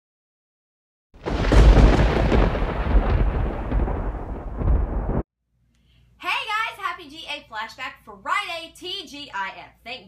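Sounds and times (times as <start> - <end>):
loud rumbling crackling sound: 1.2 - 5.2.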